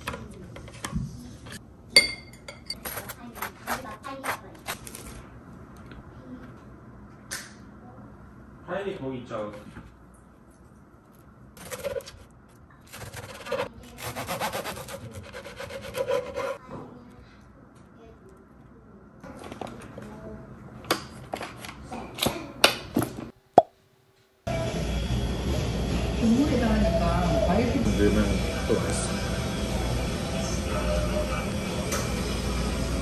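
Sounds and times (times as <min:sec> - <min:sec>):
knife sawing through bread: 0:12.9 - 0:16.6.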